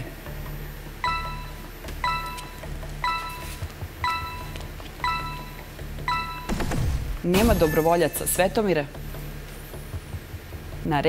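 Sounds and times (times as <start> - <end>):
low music bed: 0.0 - 11.0
countdown timer chiming: 1.0 - 9.0.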